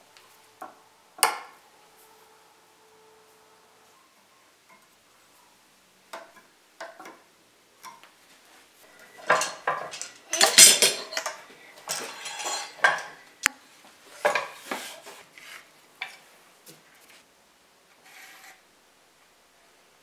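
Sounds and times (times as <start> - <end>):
metal clamps clinking and rattling: 9.0 - 13.2.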